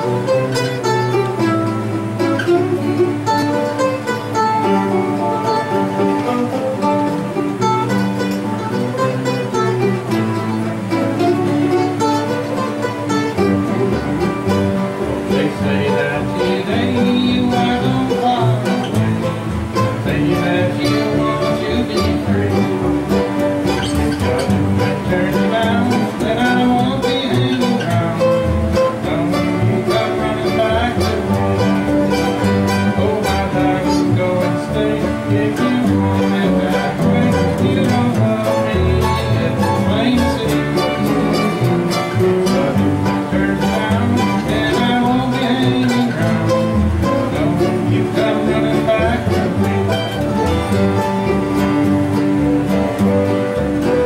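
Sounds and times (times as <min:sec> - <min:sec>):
acoustic guitars playing: 0:00.0 - 0:54.0
bass part: 0:00.0 - 0:54.0.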